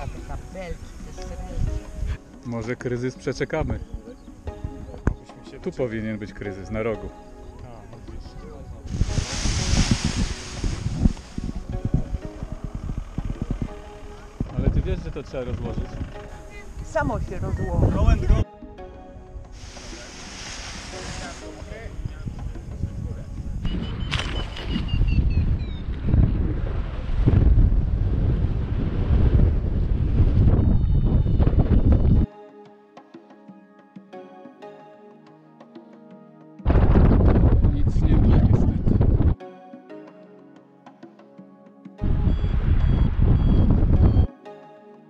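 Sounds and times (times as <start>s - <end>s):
wind buffeting microphone: 8.5s - 18.4s, 20.6s - 32.3s, 36.7s - 39.4s, 42.0s - 44.3s
faint falling whistle: 23.6s - 25.8s
faint high beeps: 42.1s - 44.3s.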